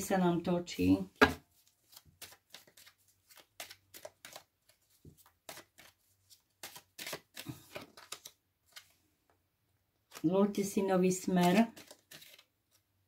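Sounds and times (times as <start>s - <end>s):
cards being shuffled: 1.5s - 9.0s, 10.1s - 10.3s, 11.2s - 12.9s.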